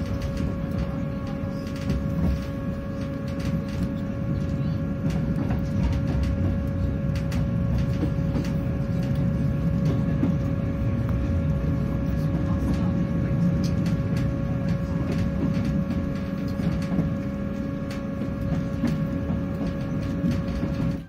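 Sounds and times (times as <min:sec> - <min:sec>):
constant whine: 0:00.0 - 0:21.0
train low rumble: 0:00.0 - 0:21.0.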